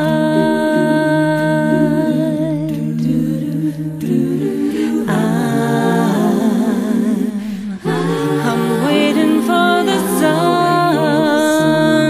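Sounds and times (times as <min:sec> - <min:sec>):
vocal harmonies without instruments: 0:00.0 - 0:12.0.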